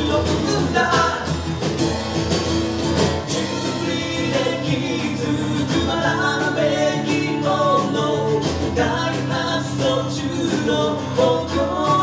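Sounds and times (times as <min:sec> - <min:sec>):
person singing: 0:00.0 - 0:01.5, 0:03.4 - 0:12.0
acoustic guitar strumming: 0:00.0 - 0:12.0
drums keeping a steady beat: 0:00.0 - 0:12.0.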